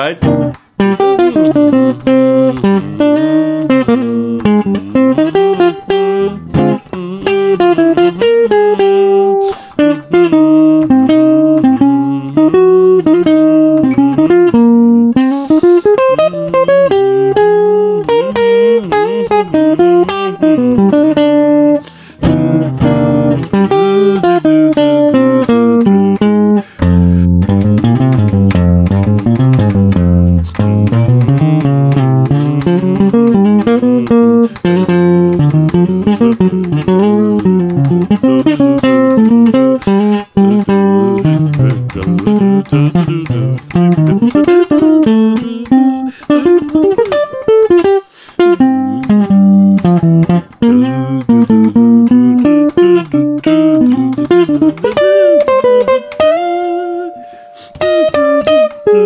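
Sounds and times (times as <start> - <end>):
solo jazz guitar: 0.0 - 59.0.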